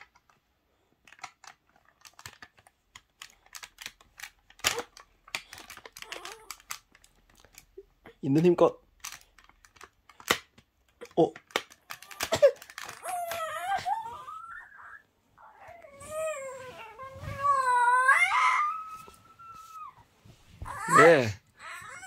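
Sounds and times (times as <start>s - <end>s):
plastic toy parts clicking: 0.0s - 0.4s, 1.0s - 7.8s, 8.4s - 13.5s
child whining cry: 6.0s - 6.6s, 12.1s - 22.0s.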